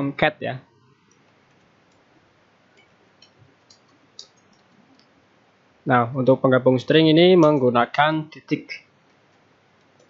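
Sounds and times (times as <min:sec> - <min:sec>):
computer keyboard keystrokes: 0:02.8 - 0:05.1.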